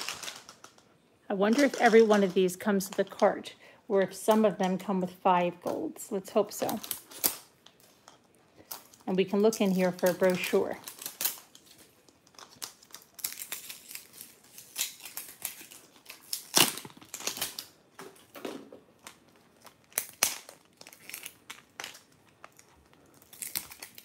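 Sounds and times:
plastic seal crinkling: 0.0 - 3.2, 6.6 - 24.0
plastic seal ripping: 10.8 - 24.0.

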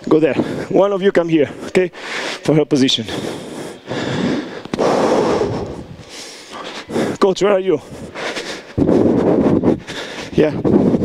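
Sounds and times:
heavy breathing: 0.3 - 11.0.

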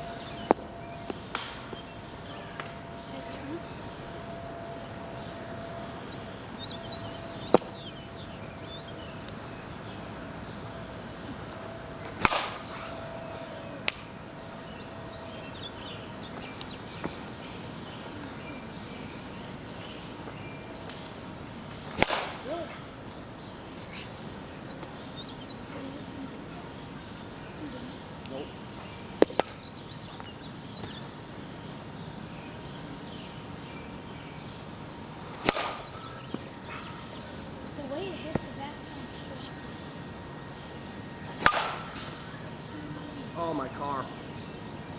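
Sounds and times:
bat cracking ball: 0.4 - 1.8, 12.0 - 13.0, 21.8 - 22.5, 29.2 - 29.6, 35.4 - 36.1, 41.2 - 42.2.

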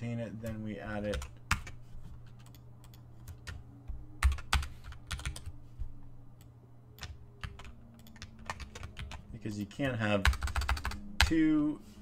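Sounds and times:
typing on computer keyboard: 4.2 - 5.5, 7.0 - 9.2, 10.2 - 11.4.

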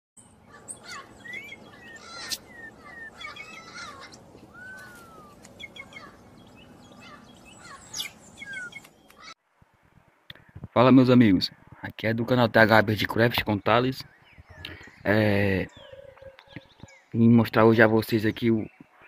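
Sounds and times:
songbirds chirping and whistling: 0.2 - 9.4, 12.3 - 19.0
steady outdoor hiss: 0.2 - 19.0.

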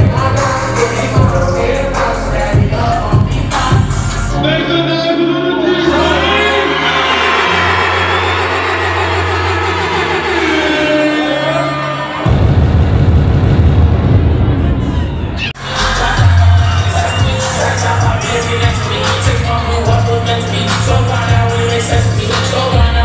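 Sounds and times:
rapping over bass-heavy backing track: 0.0 - 7.9, 15.5 - 23.0
crowd cheering: 5.5 - 22.8.

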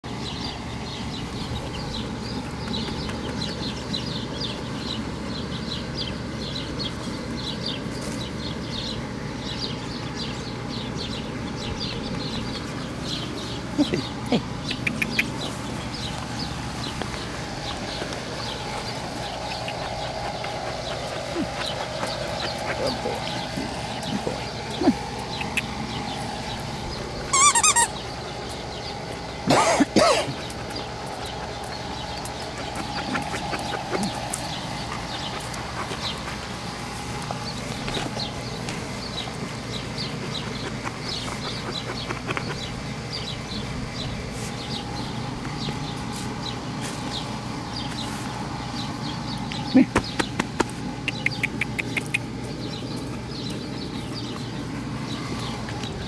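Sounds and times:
birds chirping: 0.0 - 56.0
steady low rumble: 0.1 - 56.0
squeaky toy squeaks: 27.3 - 27.9.

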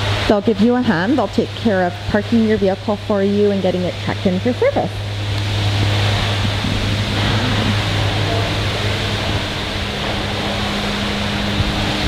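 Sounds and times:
steady rushing noise with low hum: 0.0 - 12.0.

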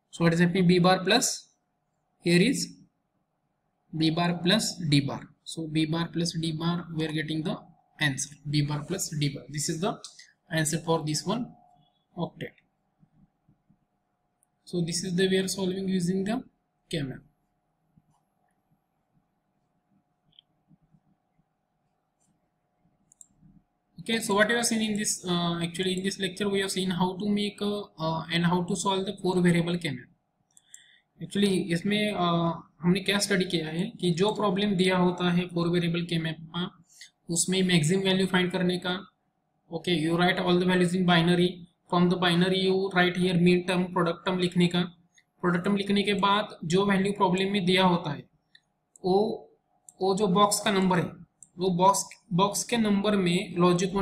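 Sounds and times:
man speaking: 0.1 - 1.5, 2.2 - 2.8, 3.9 - 12.6, 14.6 - 17.3, 24.0 - 30.1, 31.2 - 39.1, 39.7 - 48.2, 49.0 - 54.0
computer mouse click: 23.0 - 23.5, 30.5 - 30.9
faint computer mouse clicks: 30.5 - 30.9.

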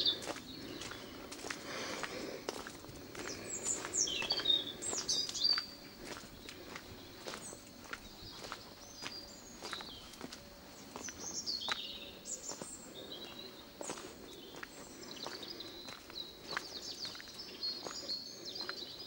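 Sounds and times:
footsteps on stone paving: 0.0 - 19.0
small birds chirping: 0.0 - 19.0.

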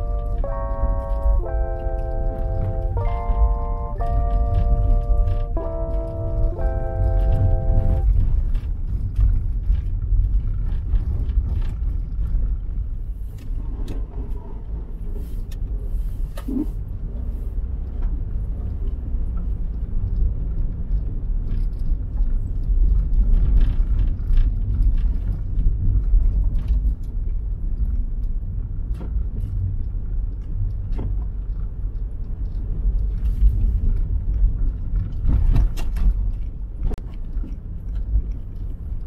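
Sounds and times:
car driving over snow: 0.0 - 27.7.

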